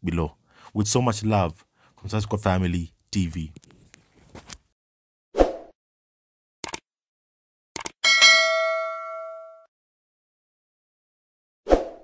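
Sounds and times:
bell ding: 8.0s - 9.7s.

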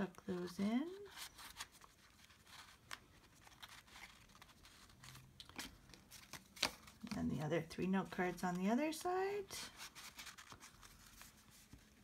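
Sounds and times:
rustling of card stock: 0.0s - 12.0s.

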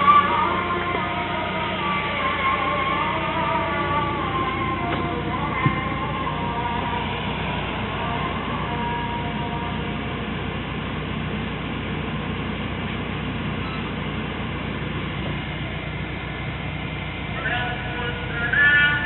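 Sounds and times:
air blower through vents: 0.0s - 19.0s
car engine idling hum: 0.0s - 19.0s.

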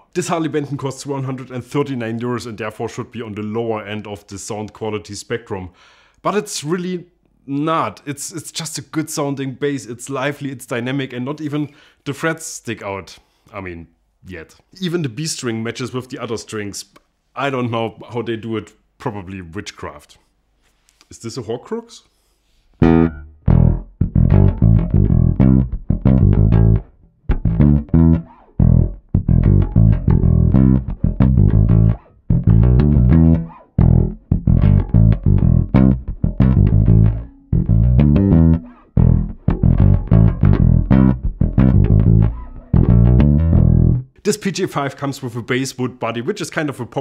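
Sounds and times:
electric bass plucked riff: 22.8s - 44.2s.

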